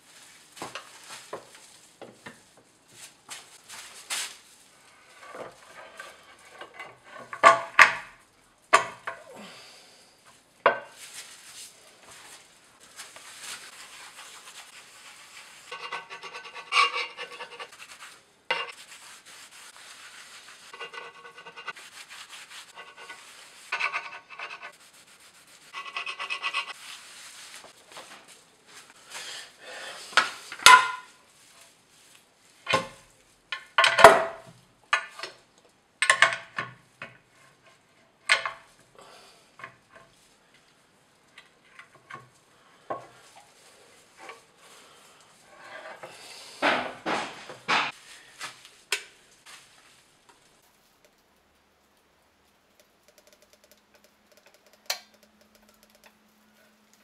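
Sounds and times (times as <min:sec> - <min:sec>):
faint ticks: 0:51.0 - 0:56.3.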